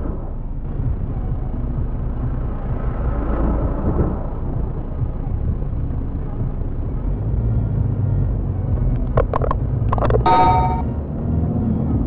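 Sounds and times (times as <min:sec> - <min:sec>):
traffic rumble inside car: 0:00.0 - 0:12.0.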